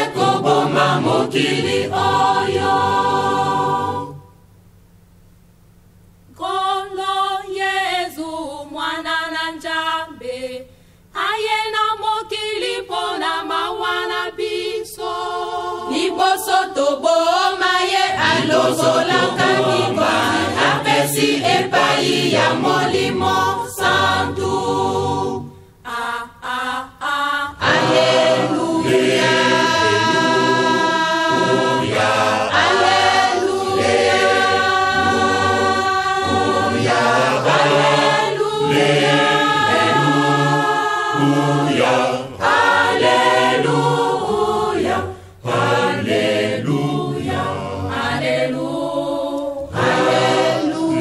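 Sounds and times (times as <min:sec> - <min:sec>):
choir singing gospel: 0:00.0 - 0:04.4, 0:06.3 - 0:51.0.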